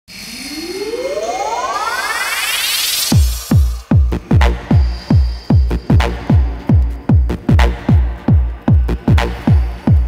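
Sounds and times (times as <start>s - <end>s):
rising synth sweep: 0.1s - 6.7s.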